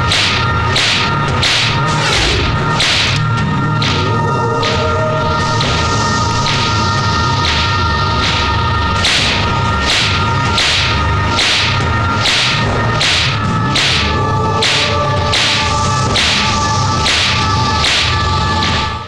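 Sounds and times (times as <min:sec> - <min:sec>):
whooshing swings and thudding blows: 0:00.0 - 0:06.8, 0:07.4 - 0:18.8
held music drone: 0:00.0 - 0:19.0.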